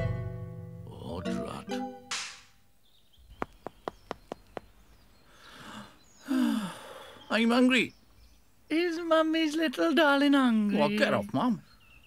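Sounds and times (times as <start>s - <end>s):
breathy sigh: 5.3s - 7.3s.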